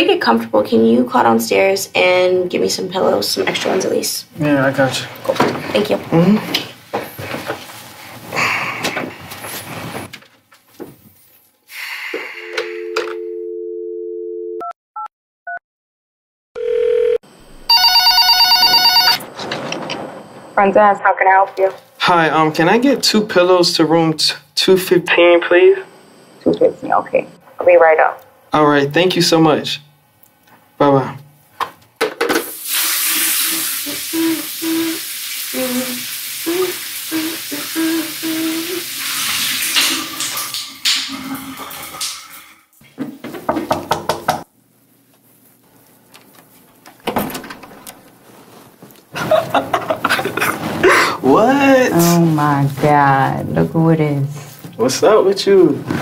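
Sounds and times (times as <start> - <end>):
dial tone: 12.4 - 15.6, 16.6 - 19.2
telephone ringing electronic trill: 16.6 - 19.3
short tone: 17.6 - 19.2
keypad beeps: 17.7 - 19.2
shower water spraying: 32.5 - 42.6.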